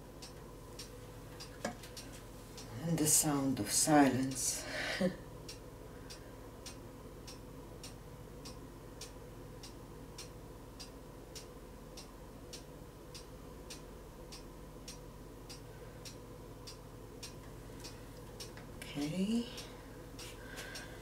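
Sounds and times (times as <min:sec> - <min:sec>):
faint regular ticking: 0:00.0 - 0:21.0
faint steady hum: 0:00.0 - 0:21.0.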